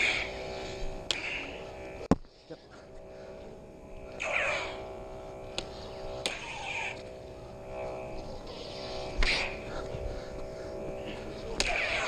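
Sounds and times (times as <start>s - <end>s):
lightsaber hum: 0.0s - 12.0s
lightsaber blades clashing clicks: 1.0s - 1.5s, 4.1s - 4.8s, 5.4s - 7.1s, 11.4s - 12.0s
lightsaber swing whoosh: 4.2s - 4.8s, 5.5s - 7.2s, 8.2s - 12.0s.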